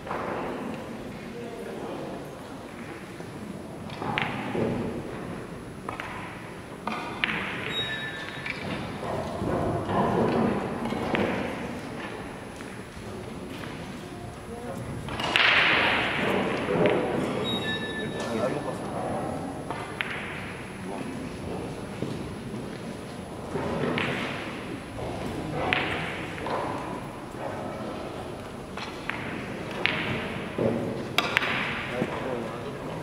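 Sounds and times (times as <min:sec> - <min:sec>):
murmur of voices: 0:00.0 - 0:05.5, 0:08.8 - 0:33.0
billiard balls clacking: 0:23.4 - 0:27.1, 0:28.8 - 0:32.2.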